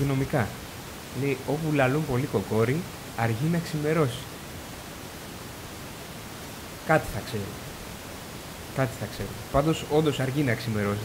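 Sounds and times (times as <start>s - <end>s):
microphone hiss and room noise: 0.0s - 11.0s.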